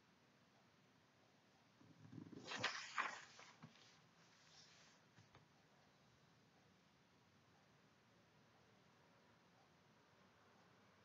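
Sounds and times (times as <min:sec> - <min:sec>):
thin paper rustling and crackling: 0:02.4 - 0:04.0.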